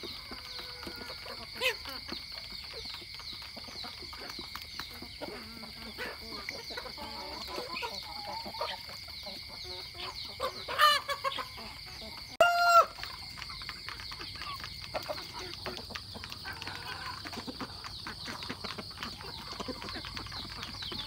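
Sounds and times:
chickens clucking: 0.0 - 21.0
rooster crowing: 12.4 - 13.0.

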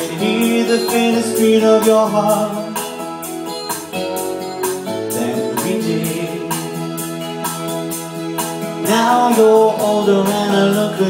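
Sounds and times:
instrumental music with steady beat: 0.0 - 11.0.

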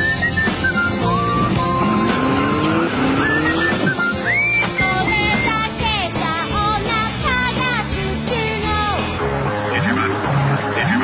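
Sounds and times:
rising pitch sound effect: 0.0 - 5.4
tv theme music: 0.0 - 11.0.

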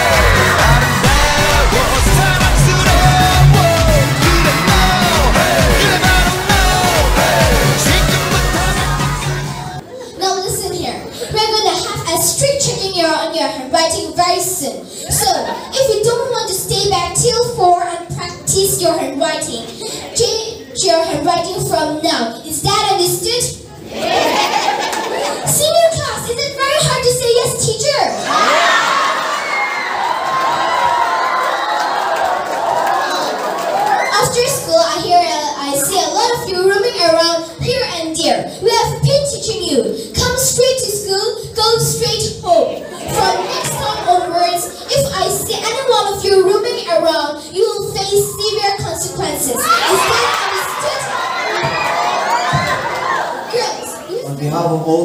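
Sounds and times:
children shouting and cheering: 0.0 - 12.8, 23.8 - 54.2.

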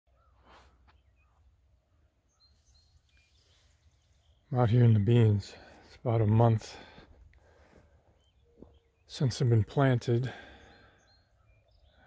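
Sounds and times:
distant bird chirps: 0.1 - 12.0.

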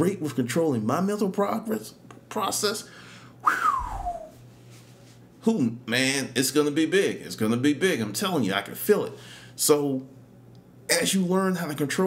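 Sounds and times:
man whistling falling note: 3.4 - 4.4.

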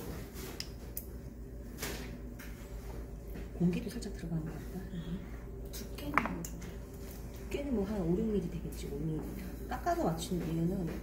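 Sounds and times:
pottery wheel humming: 0.0 - 11.0.

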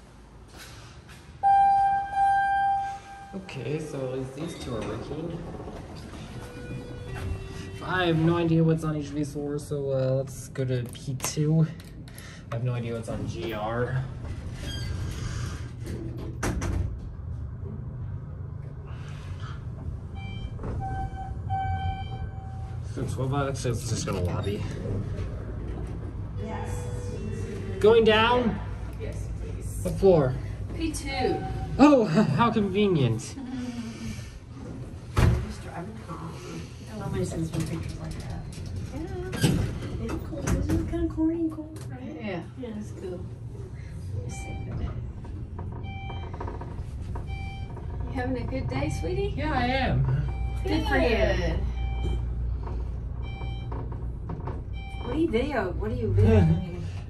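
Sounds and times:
elevator descending with low rumble: 0.0 - 57.0
electronic beep: 1.4 - 3.5
short electronic beeps: 1.4 - 3.5, 20.2 - 22.8, 31.2 - 31.8, 56.1 - 56.9.

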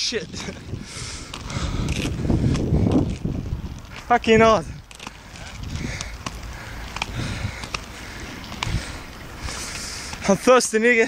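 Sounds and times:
wheels rolling over pavement: 0.0 - 11.0
wind on microphone: 0.2 - 10.2.

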